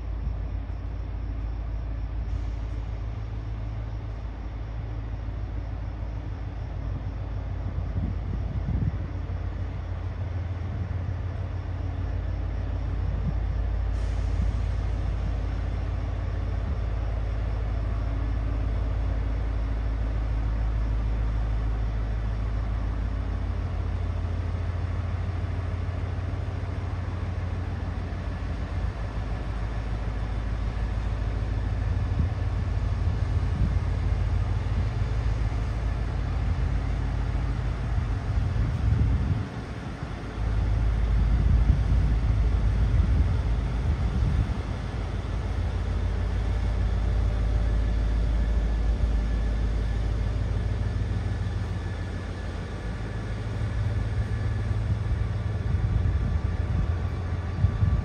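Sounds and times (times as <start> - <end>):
train diesel engines droning: 0.0 - 58.0.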